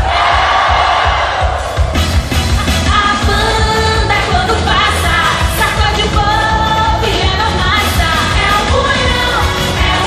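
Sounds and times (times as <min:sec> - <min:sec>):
woman singing: 0:02.8 - 0:10.0.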